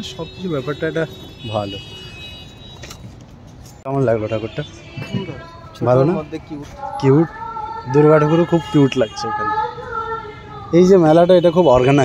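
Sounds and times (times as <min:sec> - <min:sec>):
man speaking: 0:00.0 - 0:02.0, 0:03.9 - 0:07.3, 0:07.9 - 0:09.5, 0:10.7 - 0:12.0
outdoor background noise: 0:00.0 - 0:12.0.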